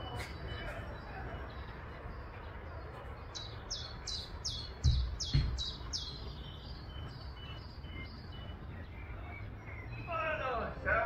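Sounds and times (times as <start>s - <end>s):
outdoor background noise: 0.0s - 11.0s
songbird singing high notes: 3.4s - 11.0s.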